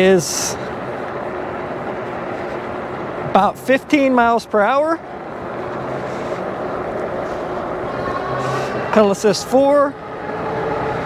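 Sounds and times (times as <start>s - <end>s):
tyre road noise: 0.0s - 11.0s.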